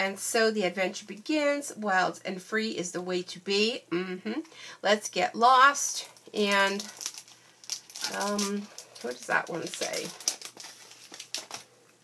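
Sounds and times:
plastic packaging crinkling: 5.9 - 12.0.

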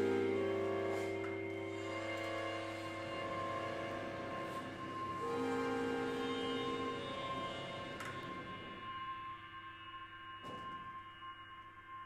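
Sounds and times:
held percussion tones: 0.0 - 12.0
higher ringing tone: 0.0 - 12.0.

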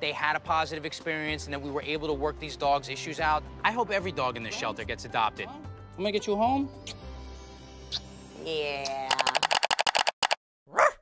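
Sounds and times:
rapid short clicks: 9.1 - 10.4
dog barking: 10.7 - 11.0.

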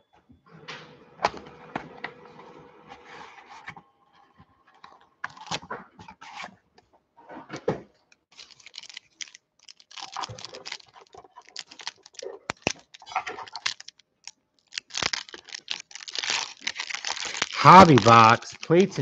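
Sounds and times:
foil pack crinkling: 8.3 - 19.0.

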